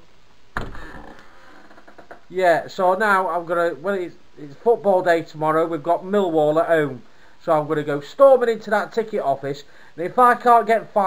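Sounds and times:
door shutting with thud: 0.6 - 1.2.

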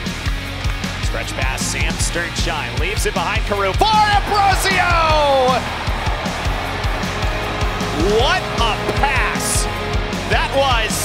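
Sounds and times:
rock music with drum beat: 0.0 - 11.0
excited voice: 3.2 - 5.7.

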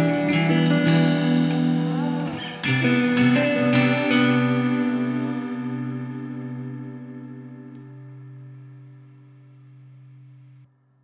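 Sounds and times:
guitar chord ringing out: 0.0 - 11.0.

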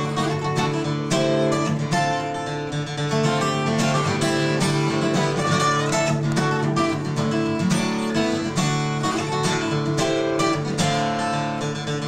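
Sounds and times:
acoustic guitar flatpicked: 0.0 - 12.0.

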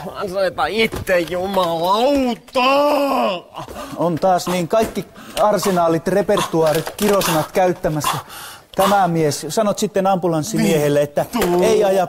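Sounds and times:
person groaning in pain: 2.7 - 4.7, 10.5 - 11.5.

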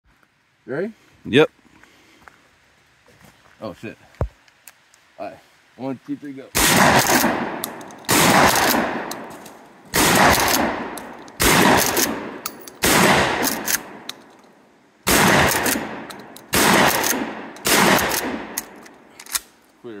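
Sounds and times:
shotgun shots: 6.6 - 9.3, 9.9 - 14.1, 15.1 - 18.8
shotgun action clicks: 6.8 - 9.3, 10.0 - 14.5, 15.1 - 19.6.

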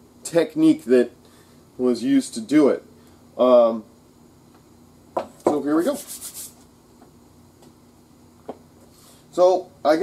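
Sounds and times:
hands rubbing together: 5.5 - 6.6.

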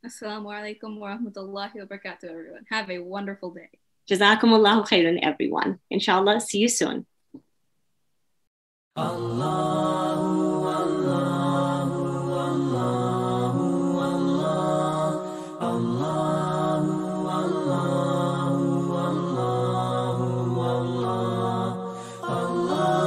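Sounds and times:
chanted vocal music: 9.0 - 23.0.

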